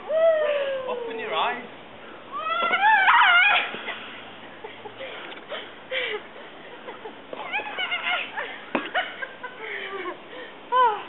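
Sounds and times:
high voices squealing and whooping: 2.3s - 3.9s.

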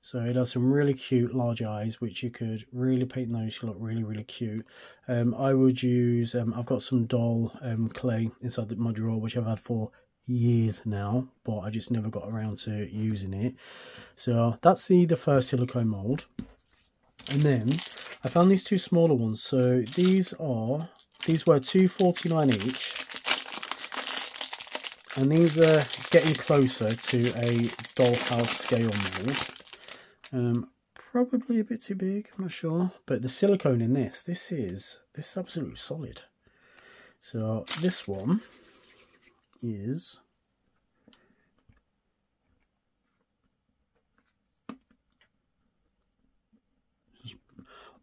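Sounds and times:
plastic bag crinkling: 17.2s - 30.4s, 37.6s - 38.4s.

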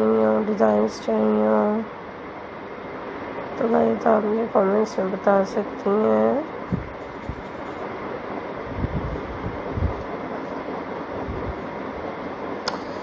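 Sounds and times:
background hiss and rumble: 0.0s - 13.0s
sharp click: 12.6s - 13.0s.

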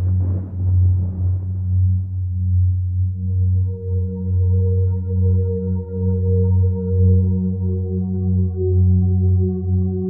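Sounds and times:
rumbling tail: 0.0s - 4.0s
ambient music drone: 0.0s - 10.0s.

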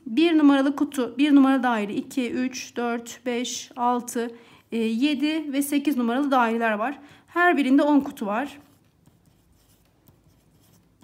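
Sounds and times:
pen scratching on paper: 8.0s - 11.0s.

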